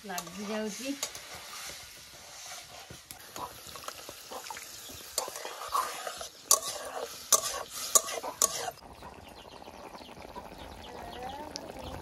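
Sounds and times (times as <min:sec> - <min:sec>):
metal spatula scraping a pan: 0:00.0 - 0:03.8, 0:05.0 - 0:08.8
spatula clinking against pan: 0:06.5 - 0:08.7.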